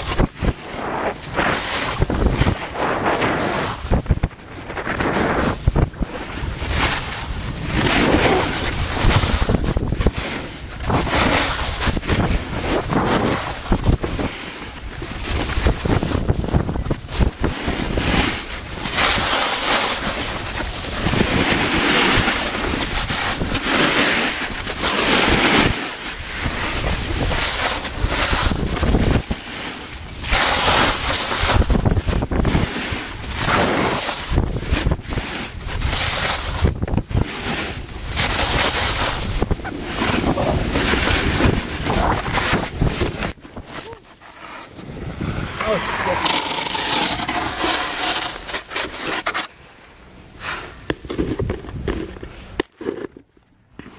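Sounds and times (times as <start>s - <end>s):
wind rushing across microphone: 0.0s - 48.3s
snowboard scraping over snow: 0.0s - 53.1s.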